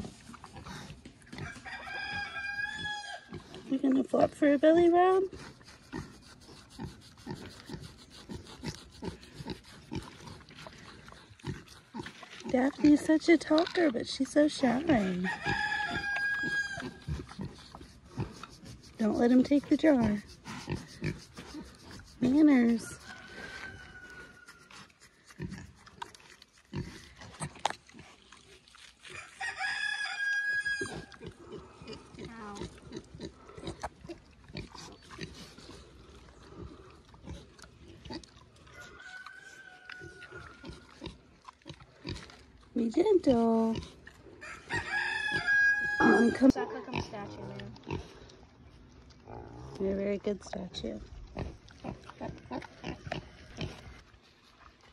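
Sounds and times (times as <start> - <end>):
pigs grunting and chewing: 0.0 - 54.9
pig grunting softly: 31.2 - 38.4.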